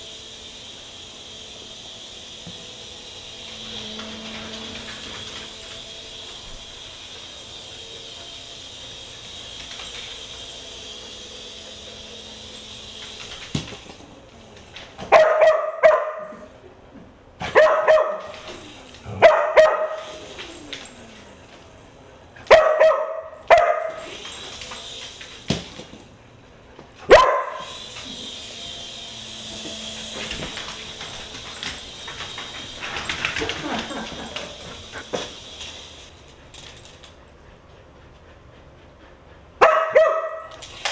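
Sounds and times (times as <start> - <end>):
dog barking: 15.1 - 16.4, 17.5 - 18.3, 19.1 - 20.0, 22.5 - 24.0, 27.1 - 27.8, 39.6 - 40.5
dog yelp: 39.6 - 40.5.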